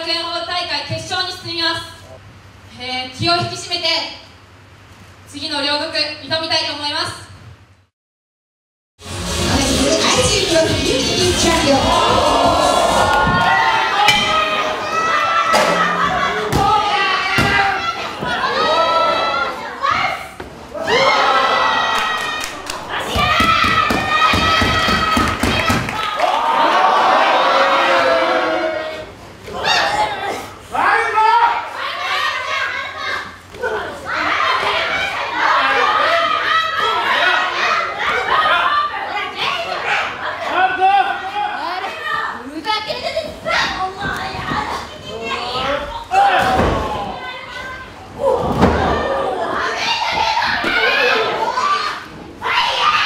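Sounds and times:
crowd noise: 9.3s - 53.0s
women shouting: 11.6s - 25.8s.

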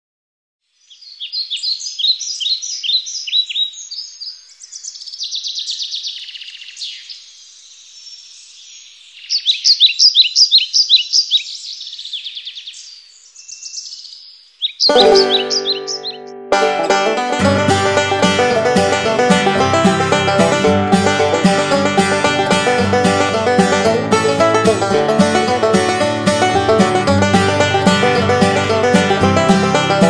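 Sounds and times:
small birds chirping and trilling: 0.6s - 16.4s.

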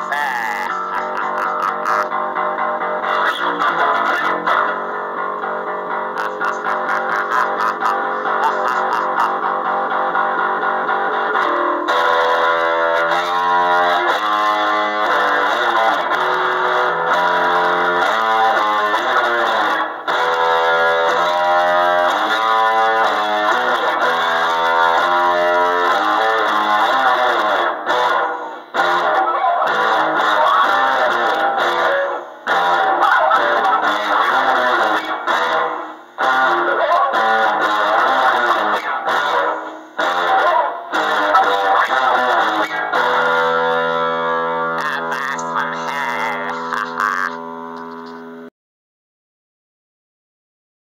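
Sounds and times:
electric bass with reverb: 0.0s - 48.5s.

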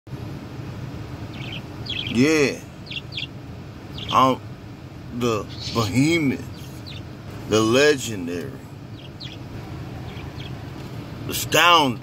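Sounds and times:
low steady hum: 0.1s - 12.0s
small bird chirping: 1.2s - 4.4s, 5.3s - 7.6s, 8.8s - 11.5s.

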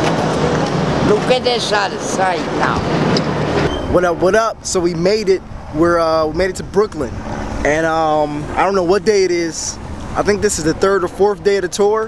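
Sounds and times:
street traffic hum: 0.0s - 12.0s
indistinct voices: 1.0s - 3.0s
man speaking: 3.9s - 12.0s.

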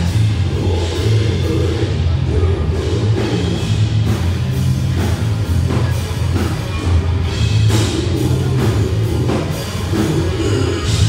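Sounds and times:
death metal band playing: 0.0s - 11.0s.

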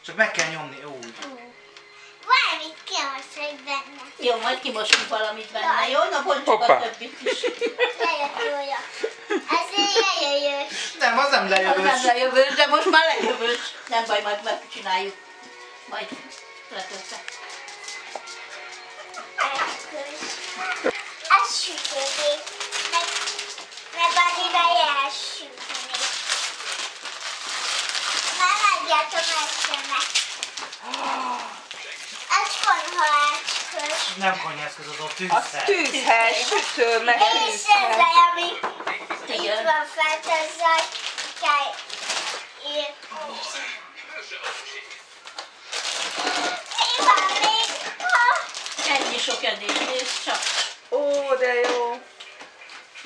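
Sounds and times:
young child's voice: 2.2s - 4.2s, 8.0s - 10.7s, 19.4s - 26.2s, 28.3s - 30.2s, 32.3s - 34.2s, 37.2s - 38.6s, 39.3s - 41.8s, 42.6s - 43.6s, 46.3s - 49.0s
wrapping paper crinkling and tearing: 2.3s - 6.2s, 16.7s - 38.3s, 39.4s - 43.7s, 44.4s - 51.5s.

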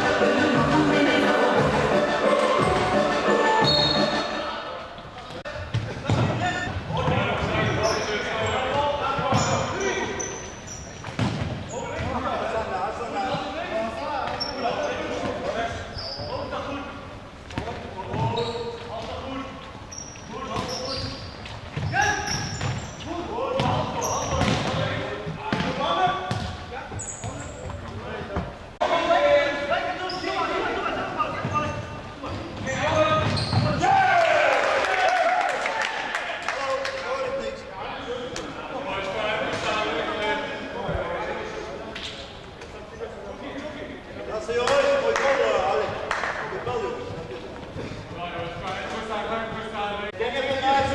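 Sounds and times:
shoe squeaks: 3.6s - 4.4s, 7.5s - 12.0s, 14.3s - 16.8s, 18.1s - 23.2s, 23.8s - 24.5s, 26.9s - 27.9s, 29.9s - 33.8s
players shouting: 32.8s - 36.2s.

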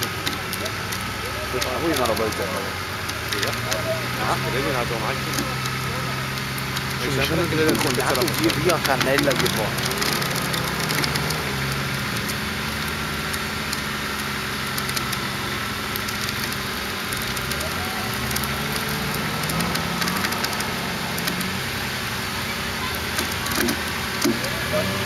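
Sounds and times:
off-road engines running: 0.0s - 25.0s
outdoor noise: 0.0s - 25.0s.

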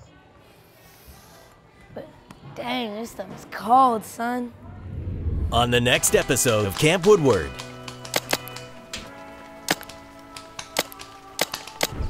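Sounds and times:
background music with held tones: 5.6s - 12.0s
paintball markers popping: 5.9s - 12.0s.

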